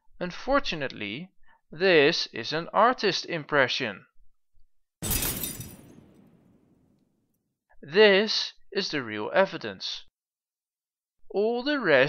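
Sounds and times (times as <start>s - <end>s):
glass pieces tinkling: 5.0s - 6.2s
glass shattering: 5.0s - 7.0s.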